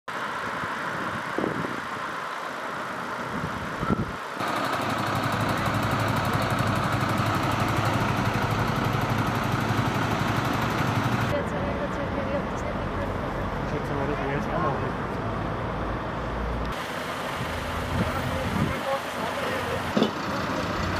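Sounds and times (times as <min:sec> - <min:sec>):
voices outdoors: 0:03.7 - 0:20.9
helicopter turbine and rotor: 0:04.4 - 0:12.6.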